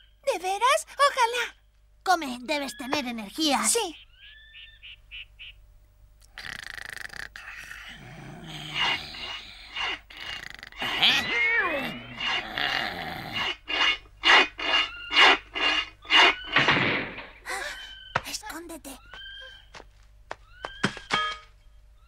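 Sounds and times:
growl: 0:06.4 - 0:13.7
file rasping on metal bars: 0:08.7 - 0:10.6, 0:11.9 - 0:16.7.

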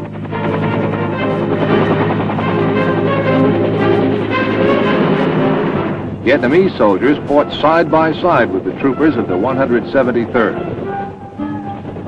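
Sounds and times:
background music: 0:00.0 - 0:12.0
helicopter rotor noise: 0:00.0 - 0:12.0.

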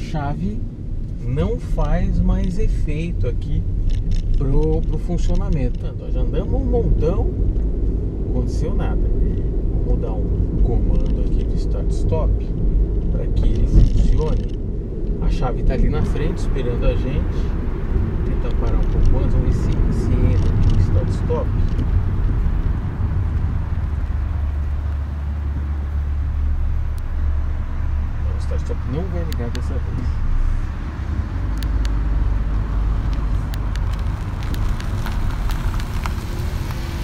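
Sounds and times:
car engine and tyre rumble: 0:00.0 - 0:37.0.

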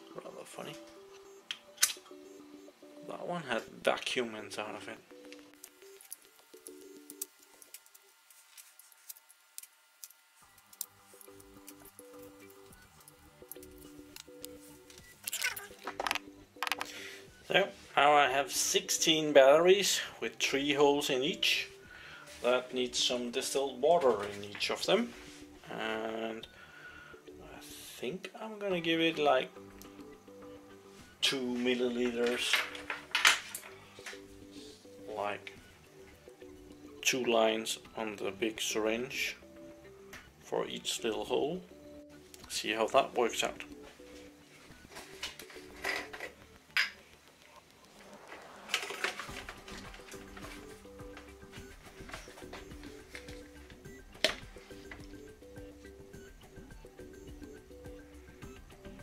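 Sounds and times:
soft background music: 0:00.0 - 0:59.0
rustling handling noise: 0:43.8 - 0:55.2.

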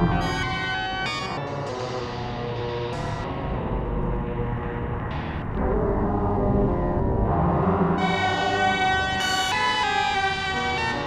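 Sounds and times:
electronically processed flute: 0:00.0 - 0:01.4, 0:08.0 - 0:11.0.

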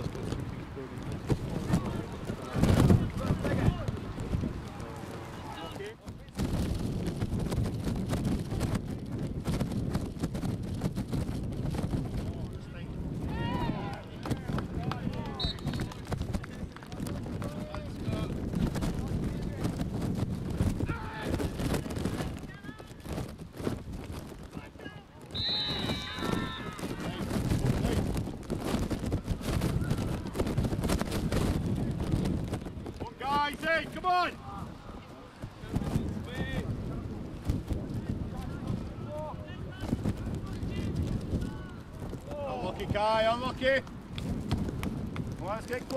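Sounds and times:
distant shouts: 0:13.3 - 0:16.0, 0:25.0 - 0:27.3.

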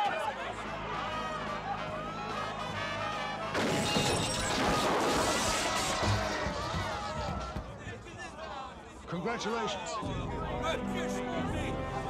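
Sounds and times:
loud crash on boat roof: 0:03.6 - 0:07.6
film music score: 0:10.0 - 0:12.0.

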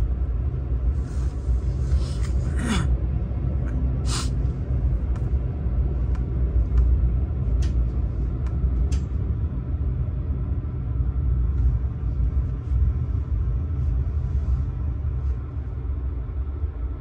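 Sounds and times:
train rumbling: 0:00.0 - 0:17.0.

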